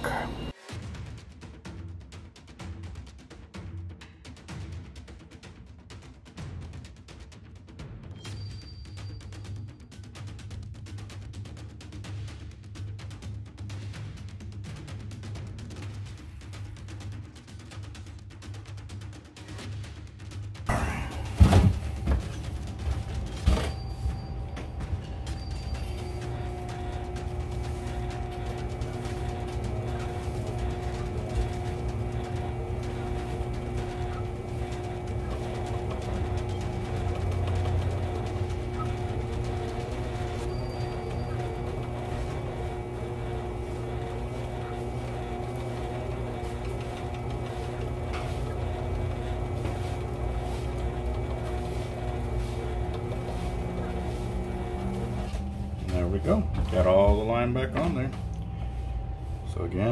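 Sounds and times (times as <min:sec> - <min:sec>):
motor spinning fishing reel hum: 0:21.4 - 0:56.8.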